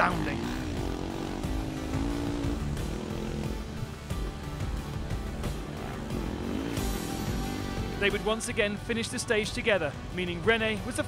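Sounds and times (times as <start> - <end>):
motorcycle engines revving: 0.0 - 8.6
background music: 0.0 - 11.0.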